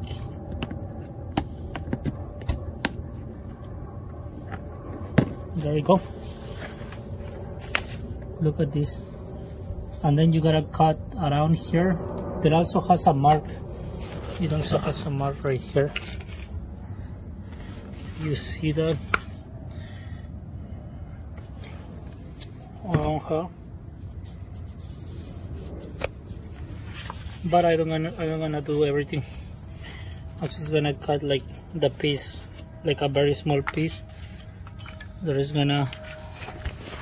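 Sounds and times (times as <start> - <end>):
crickets chirping: 0.0 - 37.0.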